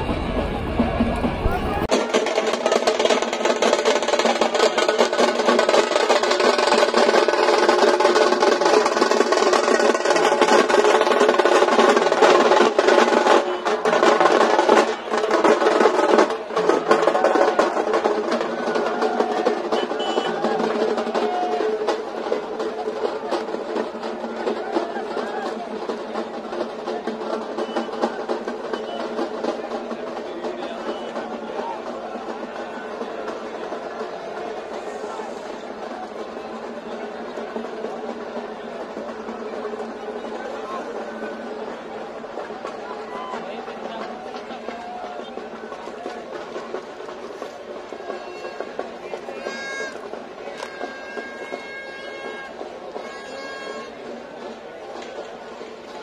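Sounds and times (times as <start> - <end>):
drums rolling and beating: 0.0 - 56.0.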